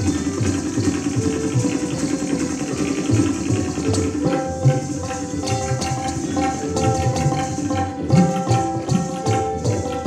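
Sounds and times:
held melodic drone note: 0:00.0 - 0:10.0
rapid tabla strokes: 0:00.0 - 0:10.0.

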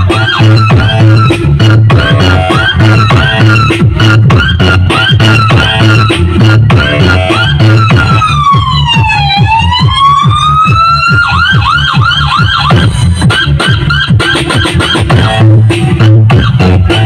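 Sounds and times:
wobbling siren effect: 0:00.0 - 0:13.0
fast bass kicks: 0:00.0 - 0:17.0
loud electronic dance music: 0:00.0 - 0:17.0.

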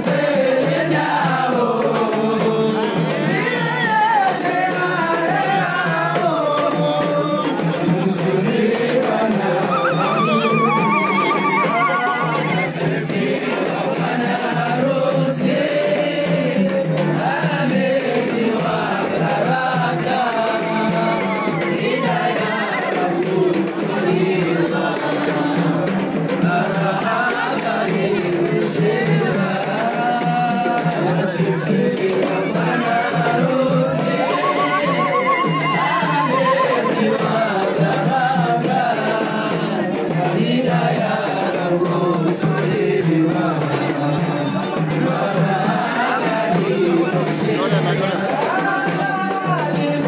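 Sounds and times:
many voices singing with music: 0:00.0 - 0:50.0
woman ululating: 0:09.6 - 0:12.8, 0:21.1 - 0:22.0, 0:34.2 - 0:37.3.

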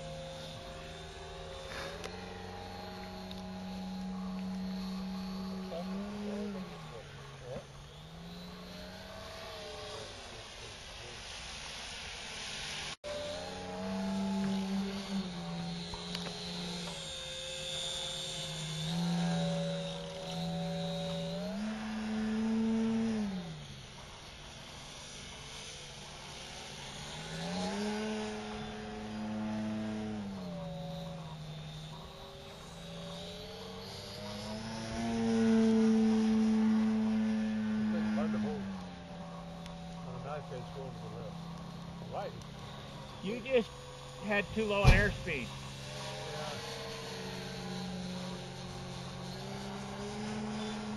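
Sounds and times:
model airplane engine revving: 0:00.0 - 0:50.9.

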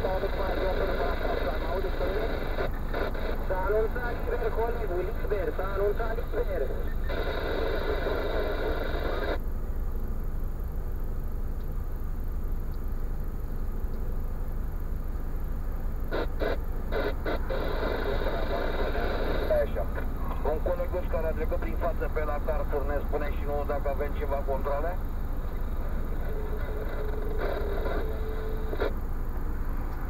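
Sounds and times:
low hum inside car cabin: 0:00.0 - 0:30.0.

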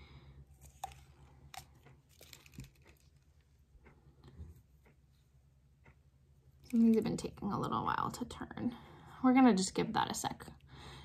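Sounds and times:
low room hum: 0:00.0 - 0:11.0
plastic tube clicks and rustles: 0:00.5 - 0:03.5.

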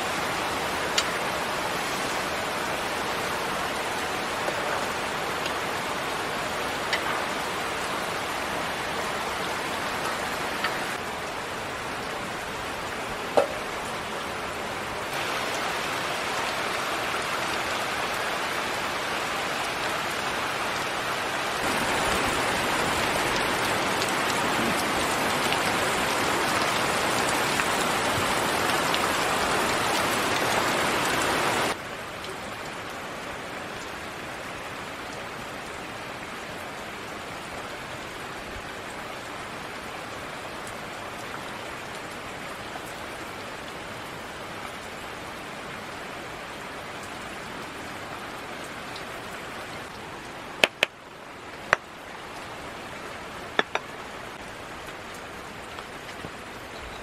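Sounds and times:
steady rainfall hiss: 0:00.0 - 0:57.0.

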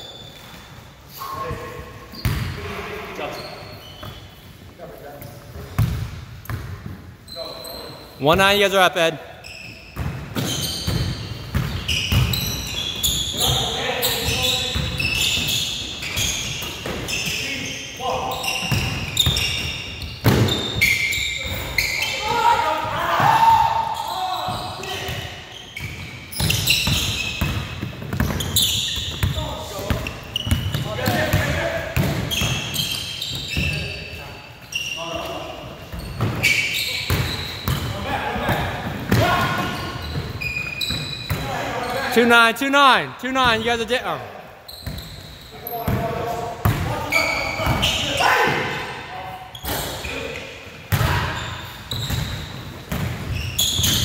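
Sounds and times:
sneaker squeaks: 0:00.0 - 0:08.3, 0:09.4 - 0:54.0
players' voices: 0:21.2 - 0:25.6, 0:29.2 - 0:40.3, 0:41.0 - 0:44.7, 0:45.4 - 0:51.5.

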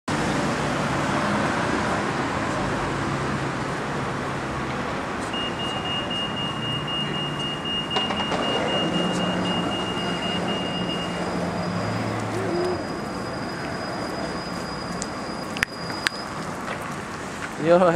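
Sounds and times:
cars driving past and idling: 0:00.1 - 0:17.9.

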